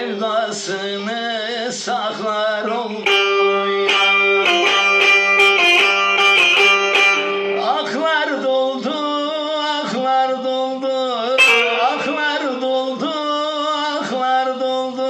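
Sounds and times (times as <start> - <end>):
plucked long-necked lute: 3.0 - 8.0, 11.4 - 13.1
man singing long note: 10.4 - 15.0.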